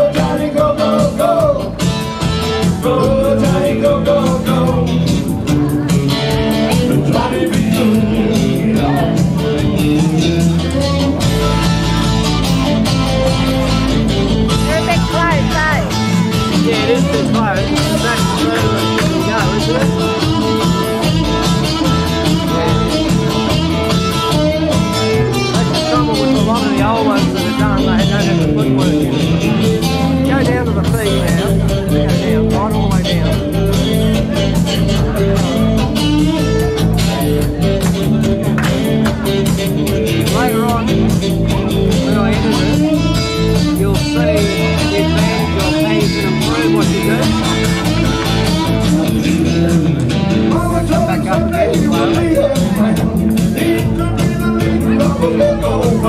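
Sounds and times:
guitar: 0.0s - 56.0s
live rock band playing: 0.0s - 56.0s
steady drum beat: 0.0s - 56.0s.

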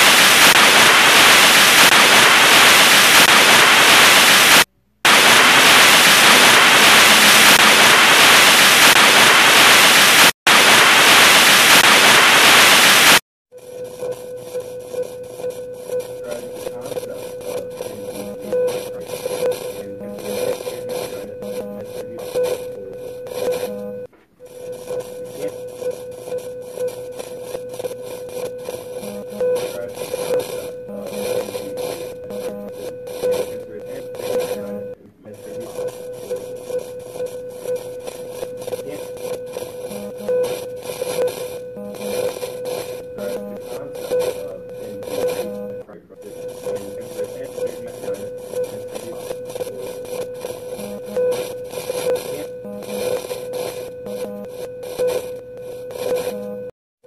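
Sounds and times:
loud static hiss: 0.0s - 56.7s
quiet crackling: 0.0s - 56.7s
steady hum: 0.0s - 56.7s.

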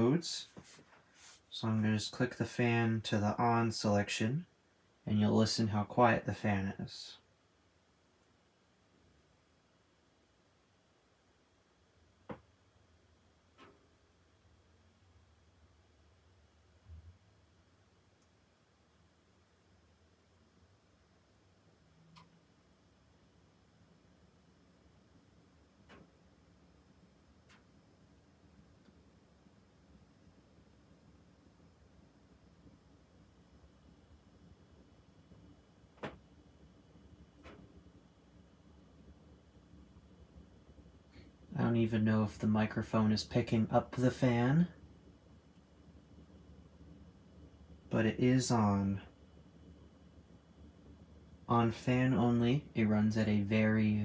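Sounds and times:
faint sharp clicks: 22.1s - 22.4s.

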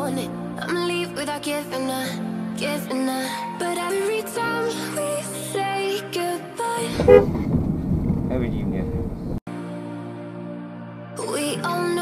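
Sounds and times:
road and engine rumble: 6.8s - 9.4s
car horn toot: 7.0s - 7.4s.

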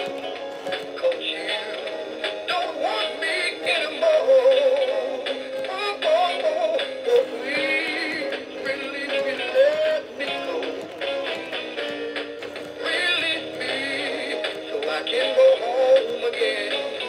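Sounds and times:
toy speaker singing over music: 0.0s - 17.0s.

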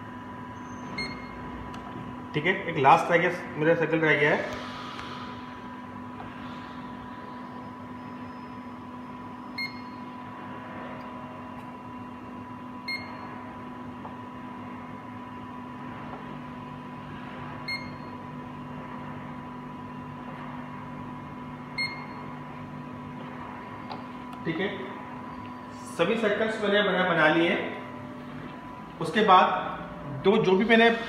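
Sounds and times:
steady electrical hum: 0.0s - 31.0s
short beeps: 0.9s - 1.4s, 9.6s - 10.0s, 12.9s - 13.2s, 17.7s - 18.1s, 21.8s - 22.2s.

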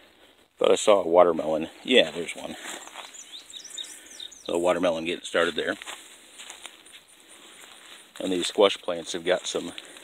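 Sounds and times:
camera rustling through plants: 1.8s - 3.4s, 4.5s - 10.0s
insects chirping: 2.6s - 10.0s.

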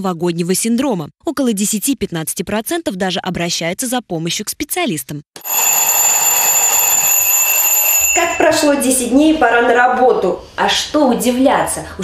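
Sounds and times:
alarm clock ringing: 5.4s - 9.0s.

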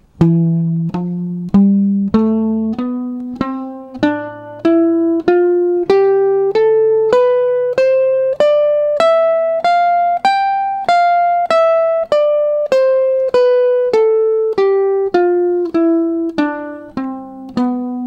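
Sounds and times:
electric guitar playing a scale: 0.0s - 18.0s.

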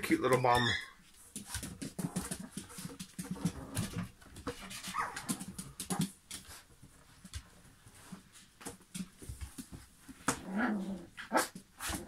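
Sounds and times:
dog scratching cardboard box: 1.3s - 6.0s.

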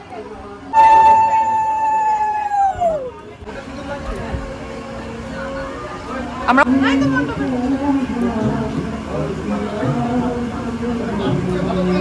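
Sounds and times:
conch shell blown: 0.7s - 2.7s.

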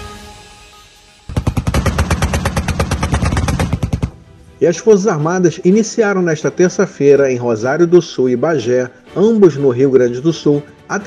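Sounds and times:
autocannon rapid burst: 1.3s - 4.2s.

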